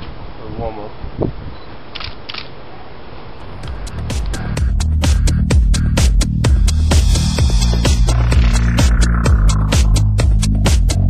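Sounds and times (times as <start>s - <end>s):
camera shutter clicks: 1.9s - 2.5s
electronic dance music: 3.5s - 11.0s.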